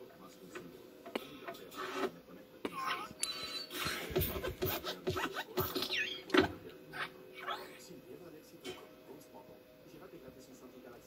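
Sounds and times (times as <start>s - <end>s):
voice from television: 0.0s - 11.0s.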